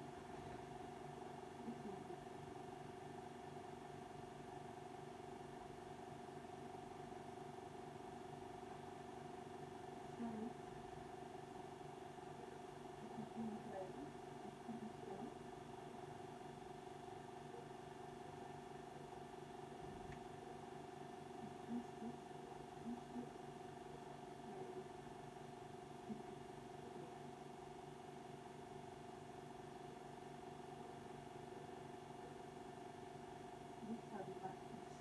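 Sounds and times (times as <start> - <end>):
faint low background hum: 0.0 - 35.0.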